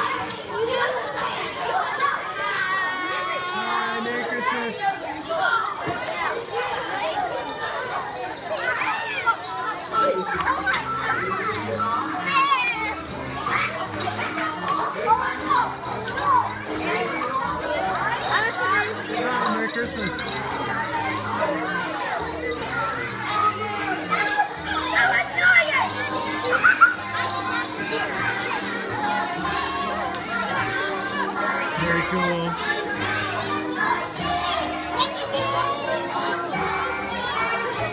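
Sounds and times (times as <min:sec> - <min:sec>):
children chattering: 0:00.0 - 0:37.9
music playing: 0:09.9 - 0:37.9.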